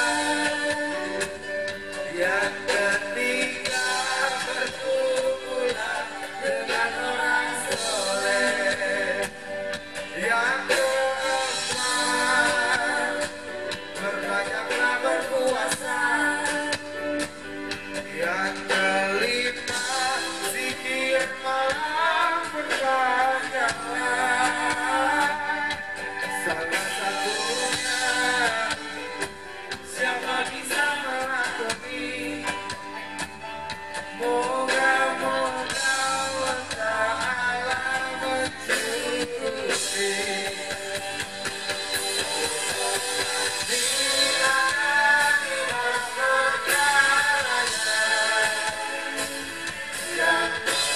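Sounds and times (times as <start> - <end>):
male and female singers: 0.0 - 33.4, 34.0 - 50.9
electric guitar: 0.0 - 50.9
keyboard: 0.0 - 50.9.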